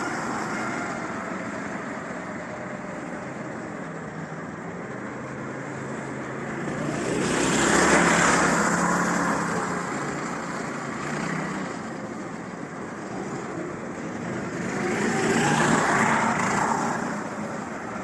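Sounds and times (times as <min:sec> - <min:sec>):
go-kart engines running: 0:00.0 - 0:18.0.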